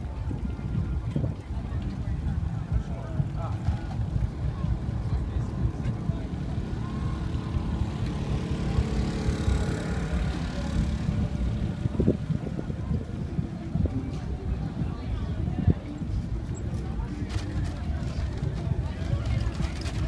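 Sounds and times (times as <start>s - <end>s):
wind rumble on microphone: 0.0s - 20.0s
bicycle rolling over dust: 16.9s - 20.0s.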